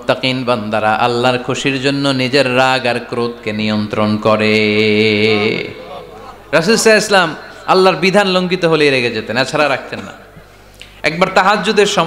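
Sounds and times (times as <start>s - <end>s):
man chanting: 0.0s - 9.6s.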